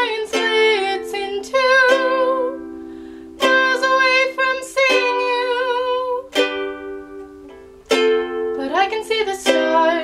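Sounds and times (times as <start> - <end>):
person singing: 0.0 - 10.0
ukulele strumming: 0.0 - 10.0.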